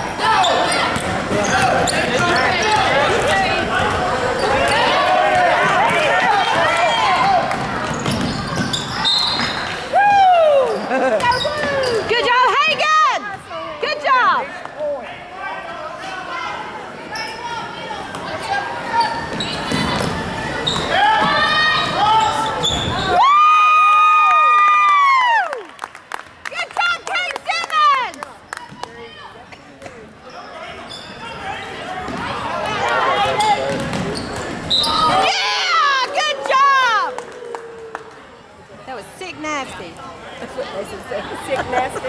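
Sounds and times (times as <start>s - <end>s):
spectators' voices: 0.0s - 23.3s, 26.4s - 42.0s.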